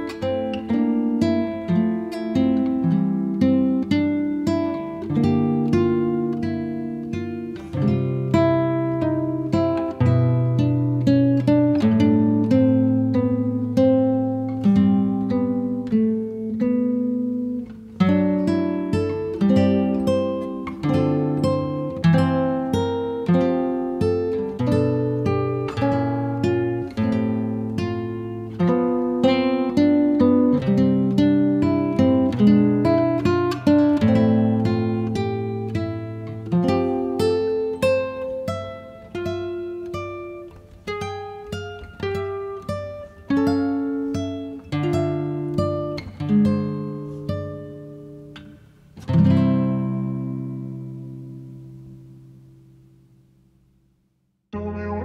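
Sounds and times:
acoustic guitar plucked melody: 0.0 - 53.8.

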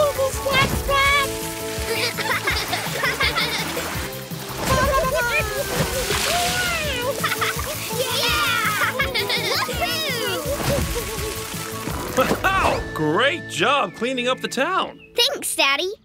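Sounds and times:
water spraying and splashing: 0.0 - 12.8
upbeat background music: 0.0 - 16.0.

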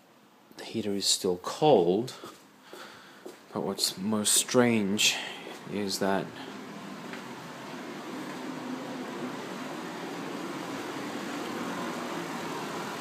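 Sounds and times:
boiler and pump humming: 5.0 - 13.0.

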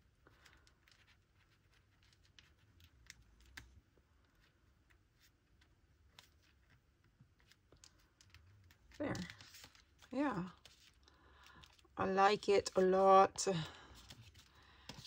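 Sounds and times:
paper rustling and tapping: 5.2 - 11.9, 12.6 - 15.0.

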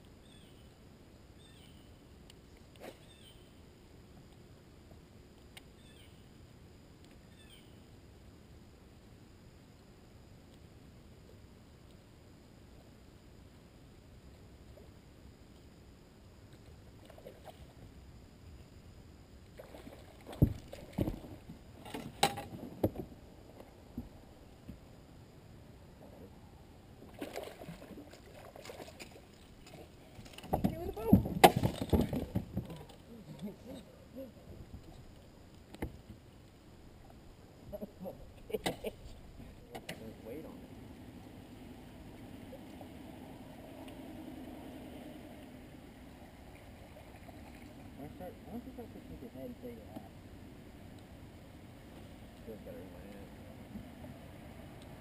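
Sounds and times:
handling noise on boat: 19.6 - 24.8, 27.0 - 36.3.

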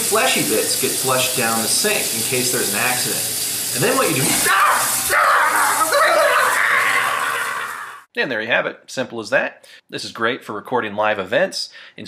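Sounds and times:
faucet water running into sink: 0.0 - 8.0.

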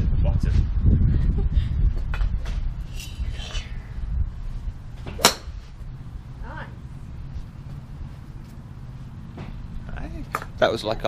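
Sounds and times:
steady low rumble: 0.0 - 11.0
golf club striking ball: 5.0 - 5.8.

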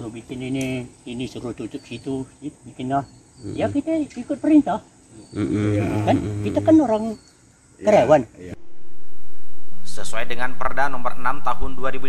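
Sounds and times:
high insect trill: 0.0 - 12.0
man speaking: 5.4 - 6.8.

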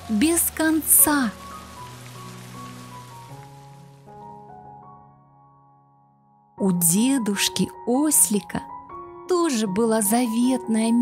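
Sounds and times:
rain hiss: 0.0 - 4.5
soft music of held notes: 0.0 - 11.0.

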